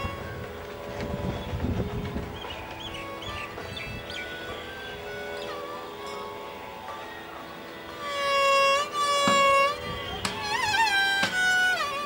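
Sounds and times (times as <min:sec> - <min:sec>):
low rumbling noise: 0:00.0 - 0:05.3
faint steady tones: 0:00.0 - 0:12.0.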